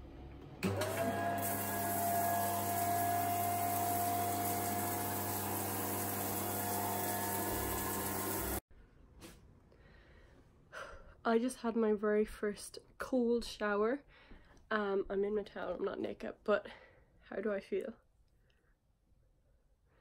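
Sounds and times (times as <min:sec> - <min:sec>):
electric shower whine: 0:00.6 - 0:08.6
water spraying from shower head: 0:01.4 - 0:08.6.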